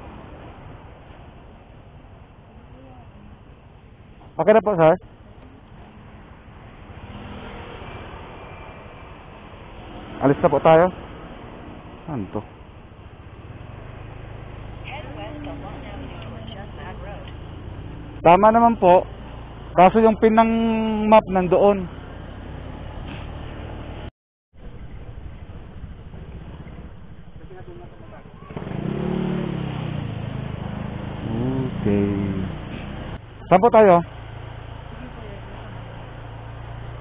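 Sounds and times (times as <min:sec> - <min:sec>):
motorcycle engine accelerating: 0:05.1 - 0:33.3
motorcycle engine running: 0:24.6 - 0:33.4.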